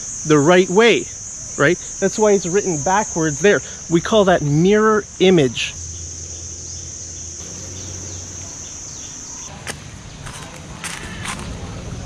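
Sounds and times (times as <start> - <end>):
insects droning: 0.0 - 12.0
footsteps: 9.5 - 11.6.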